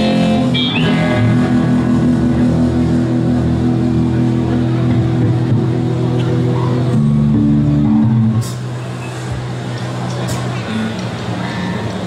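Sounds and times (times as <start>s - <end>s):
bass guitar: 0.0s - 12.0s
electric guitar: 0.0s - 12.0s.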